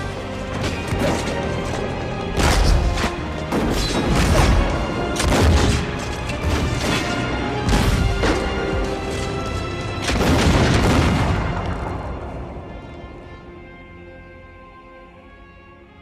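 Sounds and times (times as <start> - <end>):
orchestral music: 0.0 - 16.0
musket gunfire: 4.0 - 6.0
heavy booming blasts: 10.1 - 12.7.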